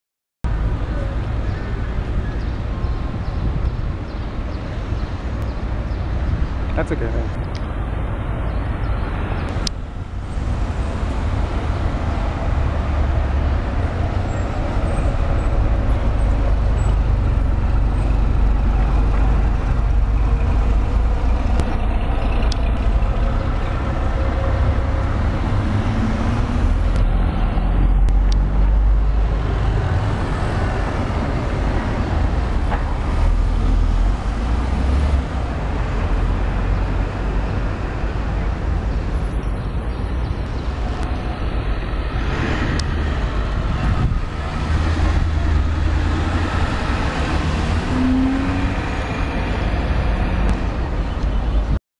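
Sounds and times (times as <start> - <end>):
heavy vehicles rumbling: 0.5 - 51.8
passing cars: 0.5 - 51.8.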